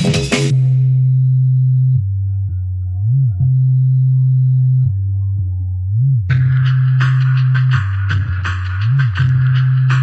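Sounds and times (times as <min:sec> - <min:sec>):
deep sine-like bass: 0:00.3 - 0:10.0.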